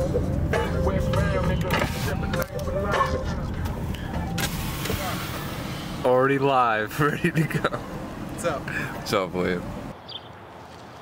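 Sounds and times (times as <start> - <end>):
car engine and road rumble: 0.0 - 11.0
rushing air hiss: 4.4 - 6.1
people talking: 6.0 - 7.8, 8.4 - 9.6.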